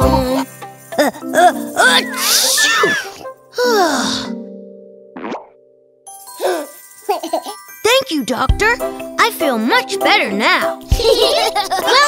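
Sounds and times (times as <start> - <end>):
cartoon music: 0.0 - 3.2
pop sound effect: 5.2 - 5.6.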